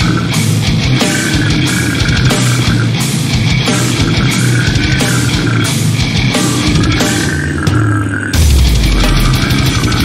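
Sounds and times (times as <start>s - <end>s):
fast drumming: 0.0s - 7.7s, 8.4s - 10.0s
death metal band playing: 0.0s - 10.0s
heavy distorted guitars: 0.0s - 10.0s.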